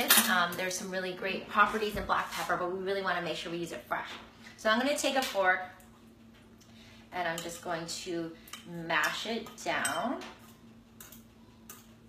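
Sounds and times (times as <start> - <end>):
steady low hum: 0.0 - 12.0
fork clicking against bowl: 11.0 - 11.9.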